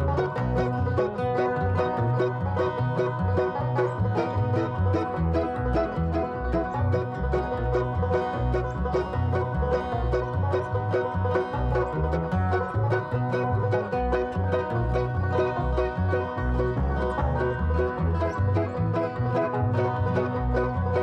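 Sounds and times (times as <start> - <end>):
banjo picking: 0.0 - 21.0
bluegrass band playing: 0.0 - 21.0
upright bass thumping: 0.0 - 21.0.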